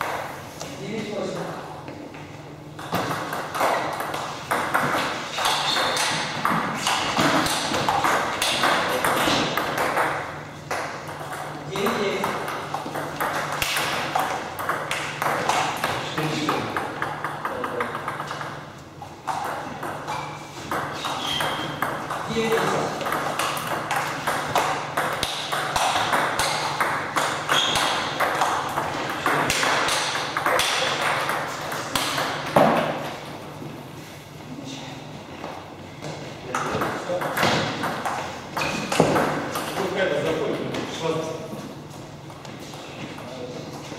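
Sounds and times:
table tennis patter: 0:01.2 - 0:33.4, 0:36.0 - 0:43.9
table tennis balls clicking: 0:02.8 - 0:33.0, 0:36.5 - 0:40.0.

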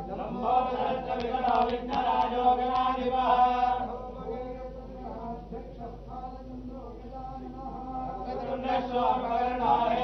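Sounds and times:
men chanting: 0:00.0 - 0:10.0.

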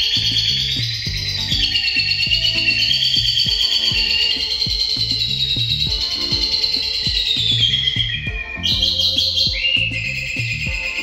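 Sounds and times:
background music with steady beat: 0:00.0 - 0:11.0
lovebird high chattering song: 0:00.0 - 0:11.0.

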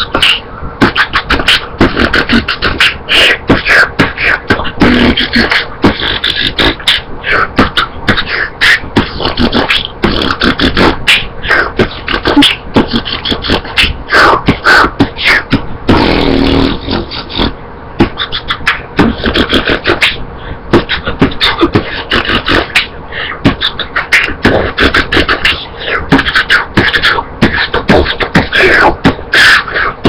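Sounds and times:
beatboxing: 0:00.0 - 0:30.0
held pitched mouth sound: 0:00.0 - 0:30.0.

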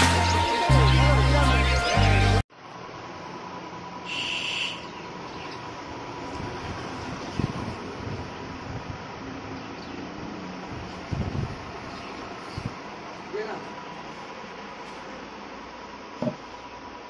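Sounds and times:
steady background hum: 0:10.7 - 0:17.0.

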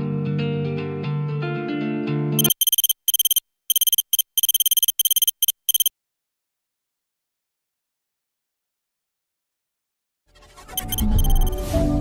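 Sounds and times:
electronic alarm beeping: 0:02.4 - 0:05.9, 0:10.8 - 0:11.7.

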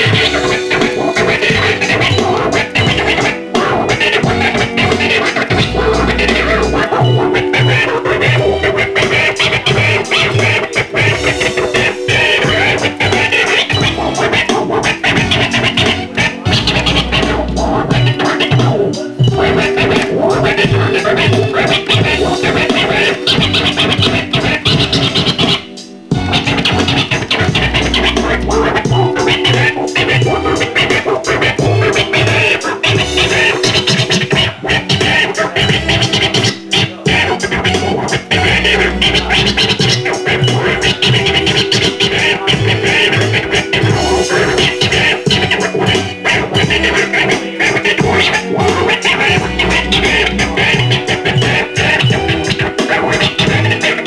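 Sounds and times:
drum beat: 0:00.0 - 0:54.0
vinyl record scratching: 0:00.0 - 0:54.0.

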